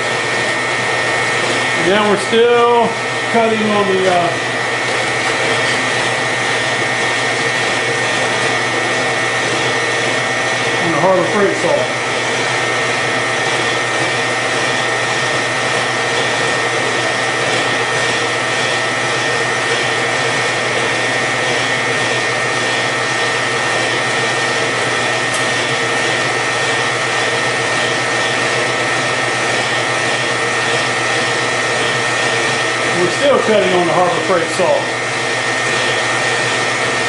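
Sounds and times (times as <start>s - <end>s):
metal-cutting bandsaw whining: 0.0s - 37.0s.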